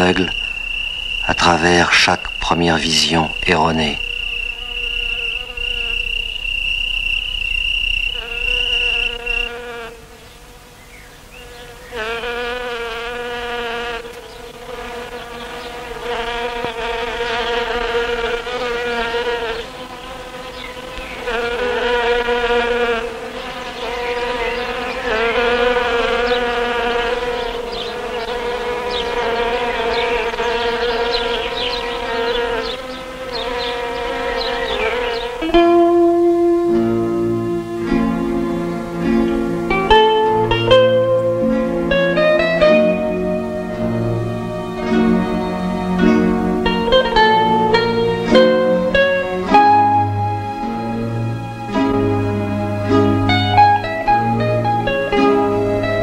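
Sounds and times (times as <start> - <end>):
insect-like buzzing drone: 0.0 - 56.0.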